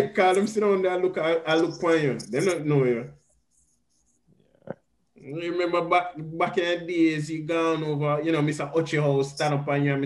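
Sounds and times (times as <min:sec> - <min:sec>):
man's voice: 0:00.0 - 0:03.1, 0:05.3 - 0:10.0.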